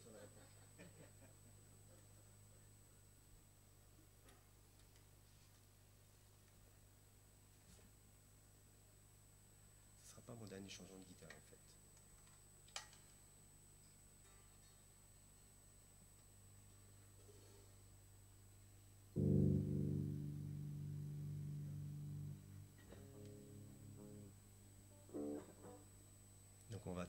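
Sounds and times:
low amplifier hum: 15.2 - 27.0
short electric guitar notes: 19.2 - 25.9
electric guitar chord: 19.2 - 26.0.

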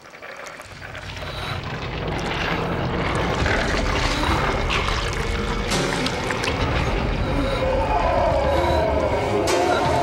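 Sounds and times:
deep rumbling: 0.6 - 10.0.

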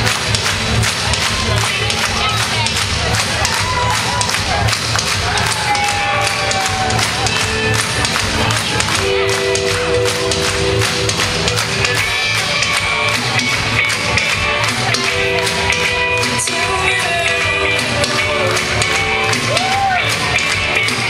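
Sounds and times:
indie pop band playing: 0.0 - 21.0
steady drum beat: 0.0 - 21.0.

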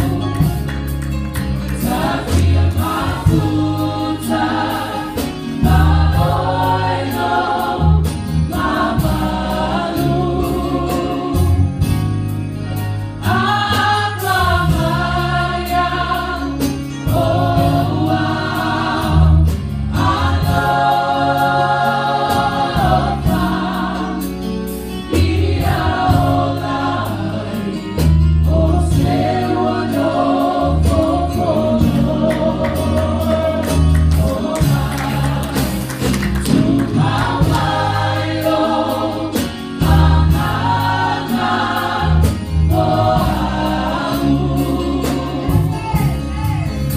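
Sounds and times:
church choir singing gospel: 0.0 - 46.9
electric keyboard with bass: 0.0 - 46.9.

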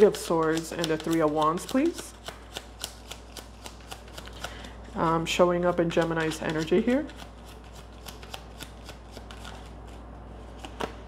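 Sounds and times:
cards being shuffled: 0.0 - 5.0, 5.9 - 11.0.

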